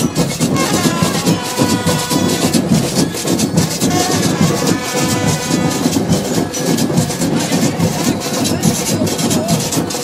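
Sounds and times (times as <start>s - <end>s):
marching band percussion: 0.0s - 10.0s.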